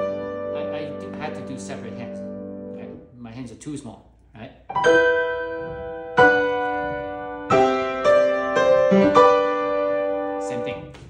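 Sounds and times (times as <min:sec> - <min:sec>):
grand piano chords: 0:00.0 - 0:03.6, 0:04.6 - 0:11.0.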